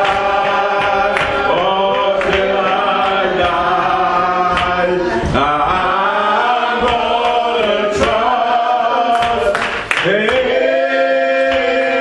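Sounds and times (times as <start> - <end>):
slow hymn singing: 0.0 - 12.0.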